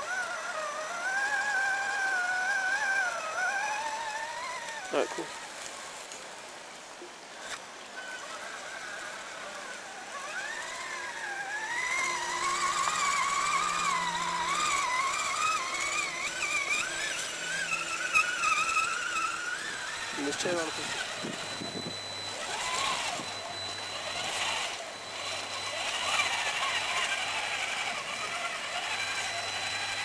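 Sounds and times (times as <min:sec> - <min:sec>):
electric motor whining: 0:00.0 - 0:30.0.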